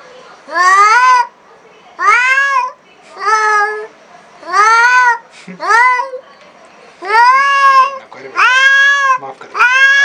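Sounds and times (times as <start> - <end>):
cat yowling: 0.5 - 1.3, 2.0 - 6.2, 7.0 - 10.0.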